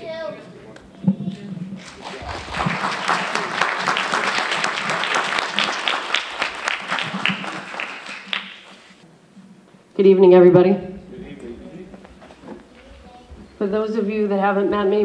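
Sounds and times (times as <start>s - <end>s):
audience applauding: 1.8s - 9.0s.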